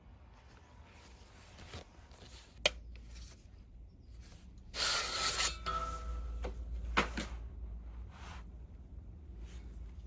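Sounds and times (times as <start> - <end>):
saw blade ringing: 5.4 - 6.4.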